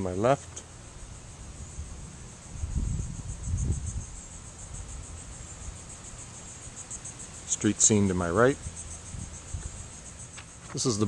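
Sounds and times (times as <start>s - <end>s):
insects trilling: 0.0s - 11.0s
low rumble on microphone: 0.9s - 6.0s.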